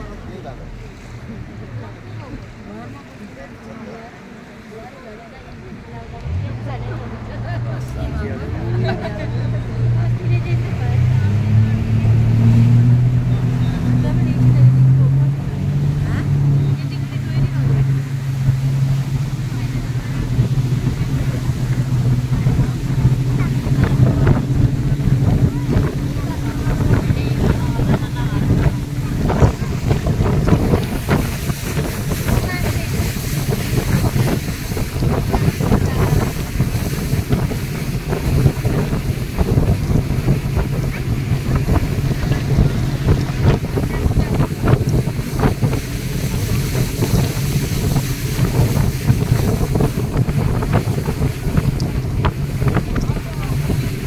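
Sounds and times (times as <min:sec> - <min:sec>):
motorboat engine humming: 0:00.0 - 0:54.0
wind on microphone: 0:06.2 - 0:54.0.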